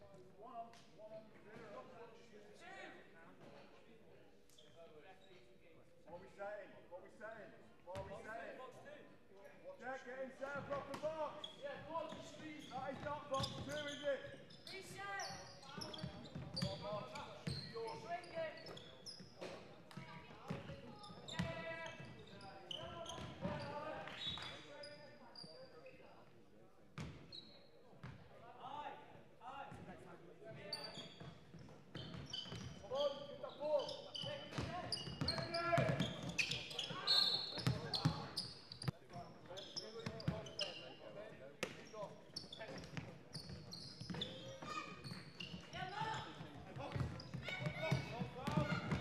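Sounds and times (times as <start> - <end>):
shoes squeaking on floor: 11.3 - 26.2, 27.0 - 27.8, 30.6 - 49.0
basketball bouncing: 46.8 - 49.0.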